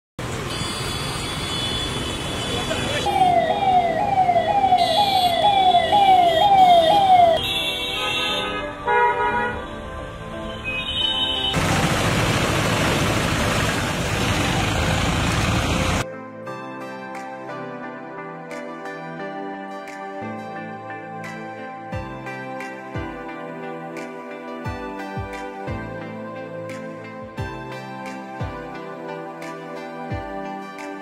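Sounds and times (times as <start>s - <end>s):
traffic noise: 0.2s - 16.0s
vehicle horns honking: 0.4s - 3.1s, 4.8s - 5.5s, 6.1s - 9.8s, 10.6s - 11.6s
ambulance siren wailing: 2.4s - 7.5s.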